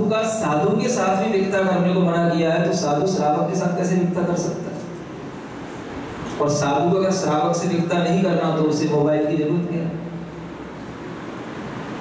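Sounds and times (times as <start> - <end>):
steady room noise hiss: 0.0 - 12.0.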